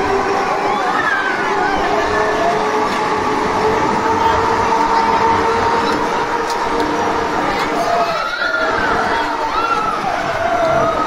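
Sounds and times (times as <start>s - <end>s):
fairground ride mechanical rumble: 0.0s - 11.0s
high mechanical whine: 0.0s - 11.0s.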